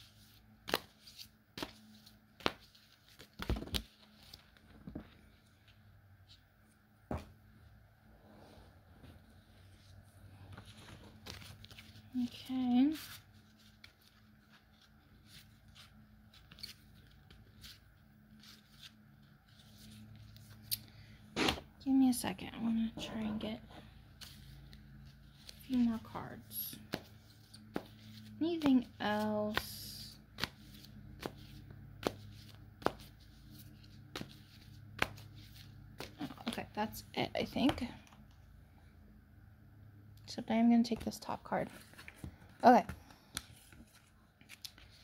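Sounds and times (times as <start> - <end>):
cards shuffling: 0.0 - 5.1, 10.5 - 21.6, 24.2 - 36.7, 40.9 - 45.0
low steady hum: 0.0 - 45.0
playing cards snapping: 0.6 - 0.9.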